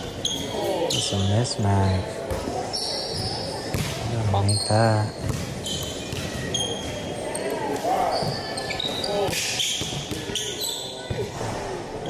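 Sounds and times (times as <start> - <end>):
sneakers squeaking: 0.0 - 11.4.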